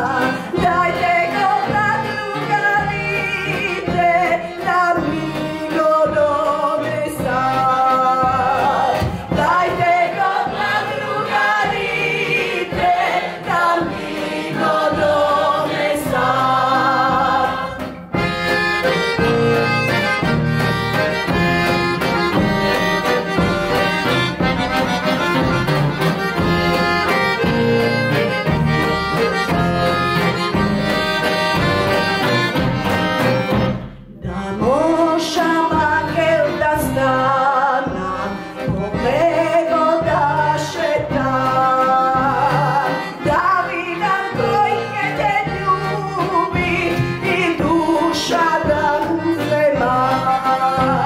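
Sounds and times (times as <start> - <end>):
woman singing with vibrato: 0.0 - 17.9, 34.2 - 51.0
folk instrumental backing: 0.0 - 51.0.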